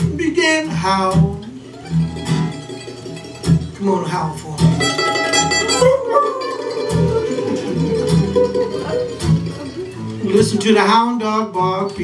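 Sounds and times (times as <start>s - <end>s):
acoustic guitar bass notes: 0.0s - 12.0s
mandolin playing: 0.8s - 12.0s.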